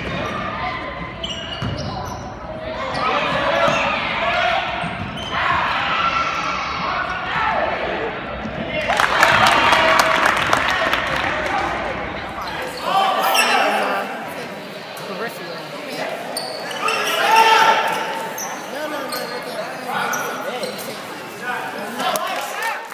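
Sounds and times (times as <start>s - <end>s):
players and spectators shouting: 2.6s - 14.8s, 16.0s - 22.9s.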